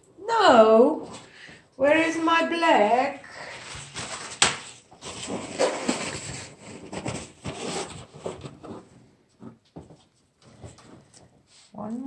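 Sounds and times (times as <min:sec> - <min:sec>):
rustling and rubbing: 0:03.4 - 0:12.0.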